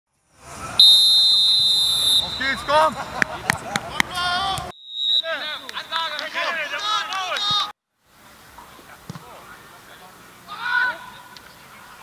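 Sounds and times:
referee's whistle blast: 0.8 - 2.9, 4.7 - 6.2.

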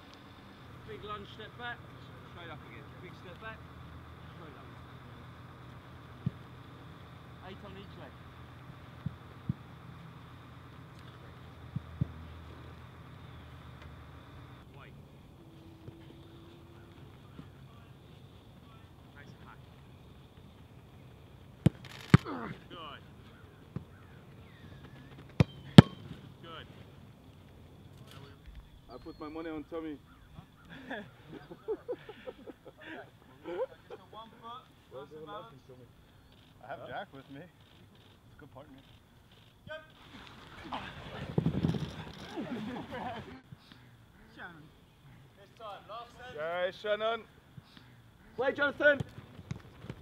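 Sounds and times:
men calling out: 14.7 - 18.0
soccer ball smacks: 25.3 - 26.0
men laughing: 30.4 - 34.4, 40.5 - 43.5.

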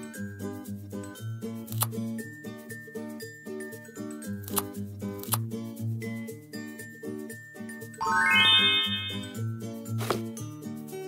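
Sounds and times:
rising chime run: 8.0 - 9.4
background music: 8.0 - 9.6.

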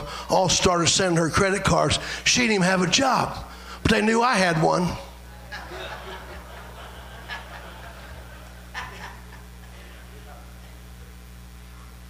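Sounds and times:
low electrical hum: 0.0 - 12.0
congregation chuckling: 5.3 - 10.8.

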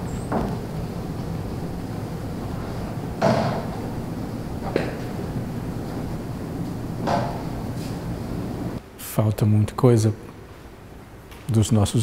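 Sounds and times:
low rumbling noise: 0.0 - 8.8.

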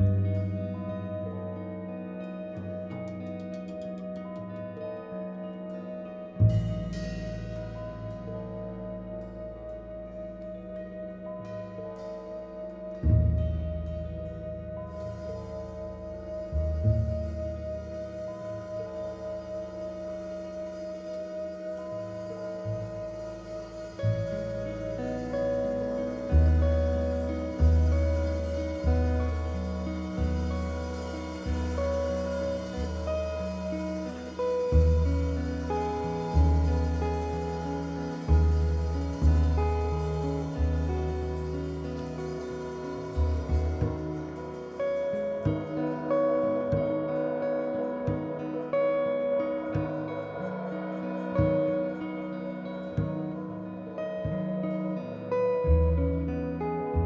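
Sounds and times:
drums: 0.0 - 55.0, 55.6 - 57.0
double bass: 0.0 - 57.0
electric guitar: 0.0 - 57.0.

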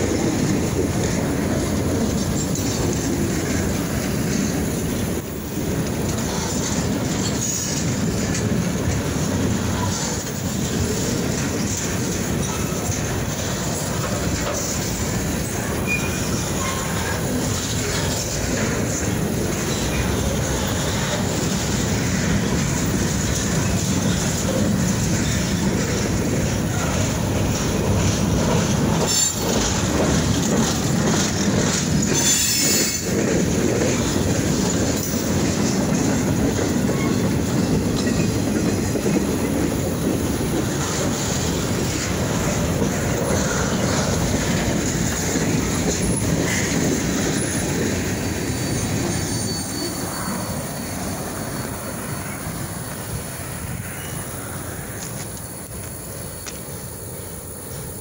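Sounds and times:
freight train cars rolling past: 0.0 - 58.0
steel wheels screeching on rails: 0.0 - 58.0.

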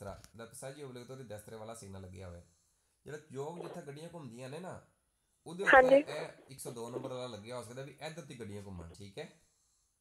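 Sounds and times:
man talking: 0.0 - 2.4, 3.1 - 4.8, 5.5 - 9.3.

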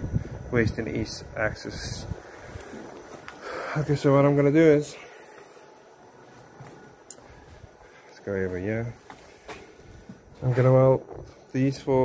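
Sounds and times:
footsteps on concrete floor: 9.0 - 11.5.

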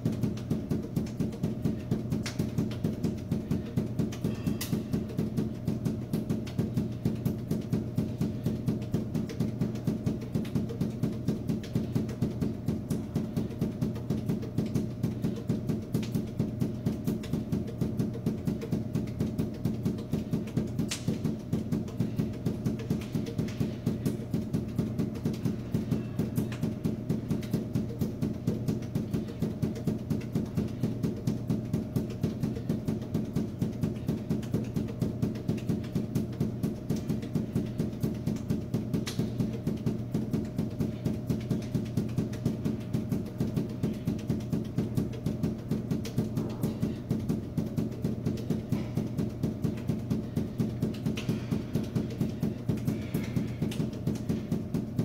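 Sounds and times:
balls bouncing on hard floor: 0.0 - 55.0.

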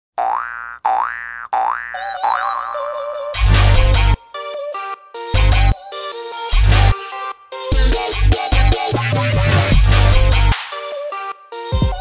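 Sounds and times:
springy boing tones: 0.2 - 2.8
bass-heavy electronic music: 3.4 - 4.2, 5.4 - 5.8, 6.5 - 10.6.

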